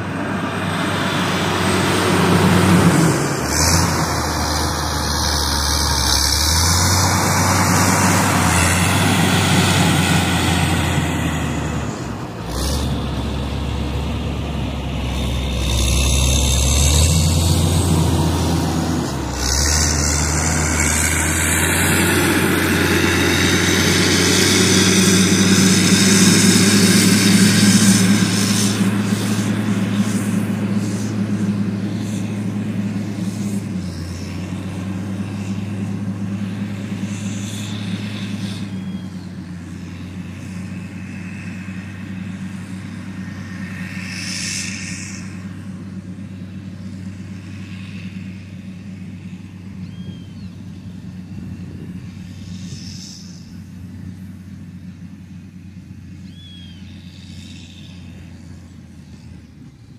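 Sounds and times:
diesel engine running under load: 0:00.0 - 0:59.9.

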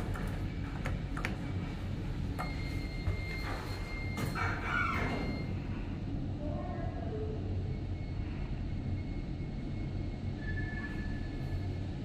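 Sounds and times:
steady low hum: 0:00.0 - 0:12.0
elevator doors sliding shut: 0:03.4 - 0:05.6.

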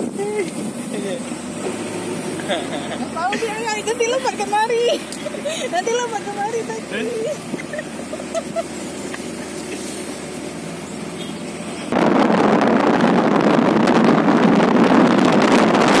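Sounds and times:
vehicle road and engine noise: 0:00.0 - 0:16.0
wind buffeting on microphone: 0:03.2 - 0:16.0.

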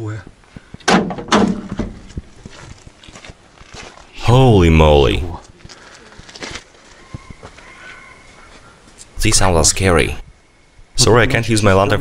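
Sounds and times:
metal cab door banging: 0:00.9 - 0:02.0
faint clicks and shuffling: 0:05.4 - 0:09.2.

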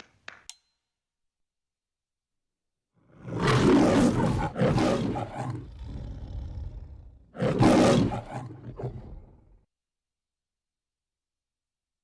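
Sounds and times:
big cat roaring: 0:03.1 - 0:09.6.

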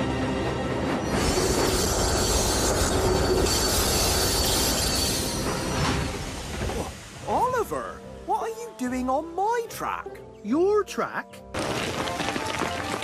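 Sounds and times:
railway wagons clattering on track: 0:00.0 - 0:07.2.

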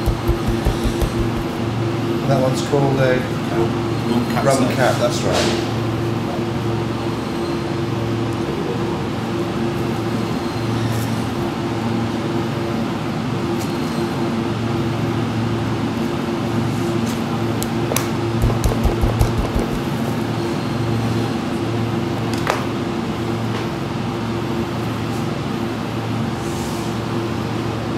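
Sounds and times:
machine hum: 0:00.0 - 0:02.6, 0:17.4 - 0:25.0.

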